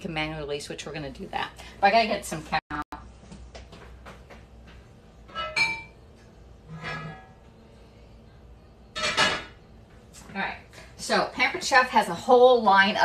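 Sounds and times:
pots and pans clanking: 5.3s - 6.0s, 6.7s - 7.4s, 9.0s - 9.6s.

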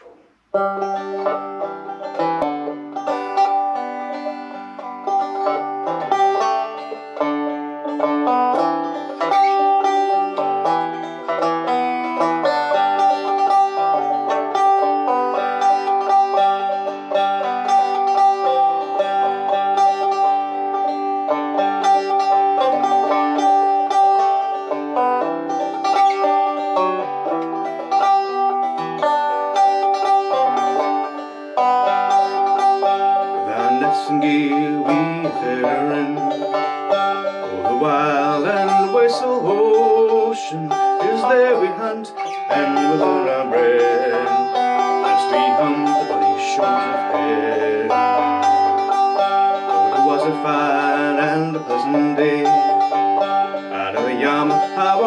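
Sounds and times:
banjo picking: 0.0s - 55.0s.

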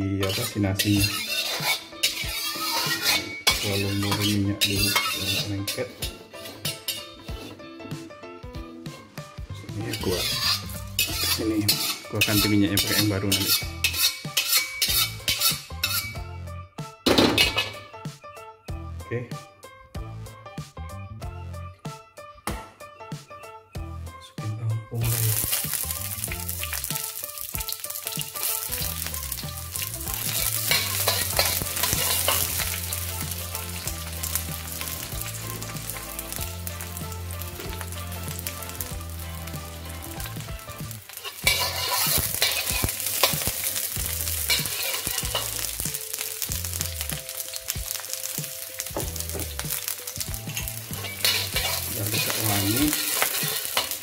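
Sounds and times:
onions sizzling in hot oil: 0.0s - 7.4s, 9.8s - 16.3s, 25.0s - 54.0s
metal spatula scraping wok: 0.0s - 7.6s, 9.5s - 16.3s, 17.1s - 17.9s, 25.0s - 54.0s.

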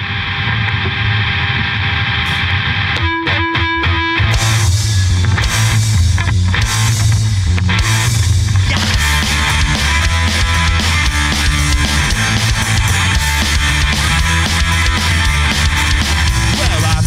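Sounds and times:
ringing distorted guitar chord: 0.0s - 17.0s
live rock band playing: 0.6s - 17.0s.

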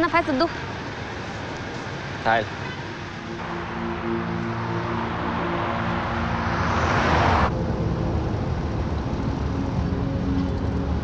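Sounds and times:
steady driving hum: 0.0s - 11.0s
car passing by: 1.1s - 11.0s.

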